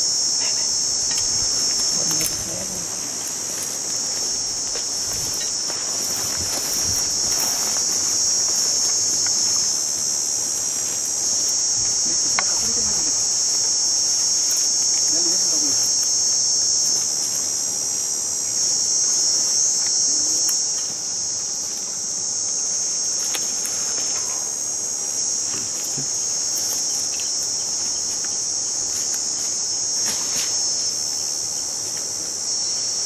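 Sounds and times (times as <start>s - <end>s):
insects chirping: 0.0s - 33.0s.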